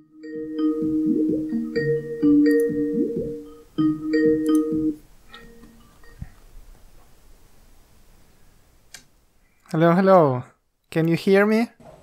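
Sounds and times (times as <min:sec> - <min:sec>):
call ringtone melody: 0:00.0 - 0:06.2
faint room noise: 0:00.0 - 0:12.0.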